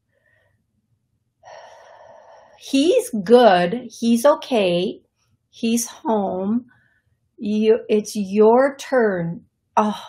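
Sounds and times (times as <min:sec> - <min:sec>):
woman breathing in softly: 0:01.4 - 0:02.6.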